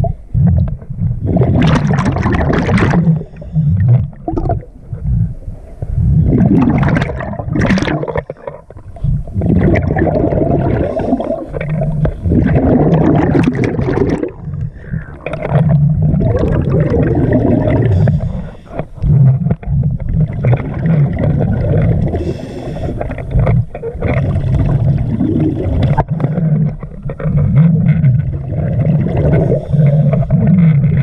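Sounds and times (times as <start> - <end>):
underwater regulator bubbling: 0.0 - 31.0.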